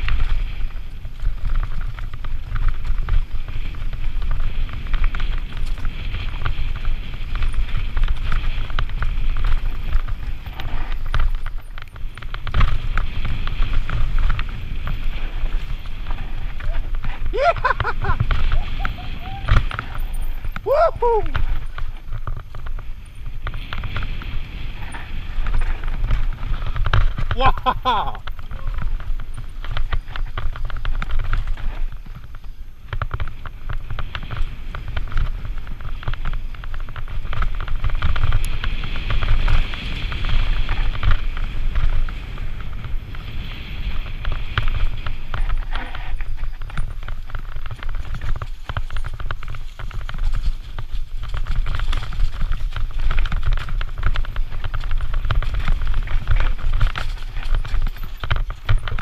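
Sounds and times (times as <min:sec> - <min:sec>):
bike clattering over bumps: 0:00.0 - 0:59.0
tyres on loose dirt: 0:00.0 - 0:59.0
wind rumble on microphone: 0:00.0 - 0:59.0.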